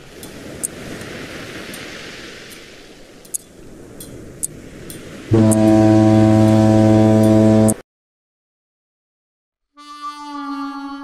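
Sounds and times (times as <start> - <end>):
deep foghorn blast: 5.3 - 7.8.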